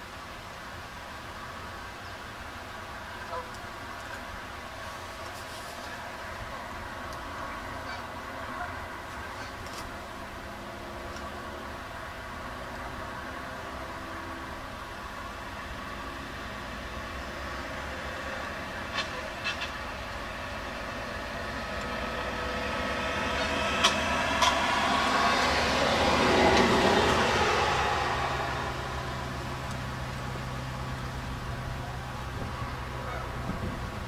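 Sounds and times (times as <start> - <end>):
vehicle passing by: 4.8 - 34.0.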